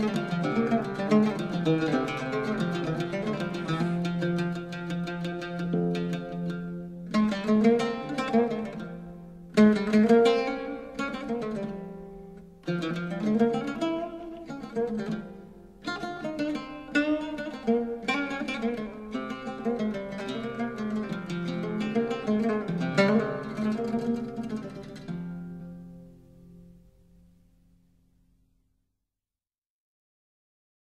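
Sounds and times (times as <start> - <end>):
solo oud improvising: 0.0 - 27.4.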